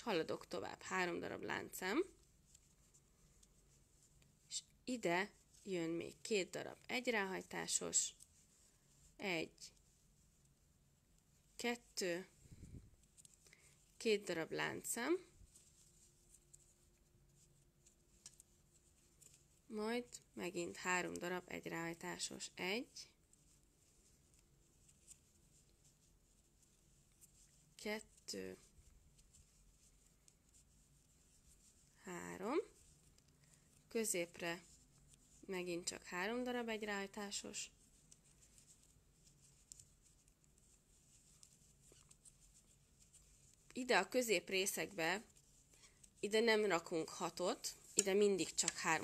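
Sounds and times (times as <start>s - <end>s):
faint steady hum: 0.0s - 49.0s
crochet hook working yarn: 13.0s - 49.0s.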